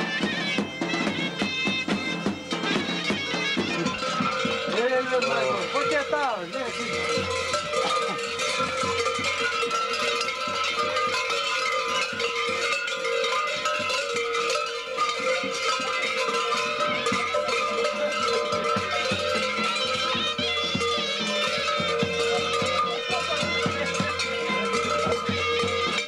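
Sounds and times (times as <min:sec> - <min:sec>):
large bells clanging: 0:00.0 - 0:26.0.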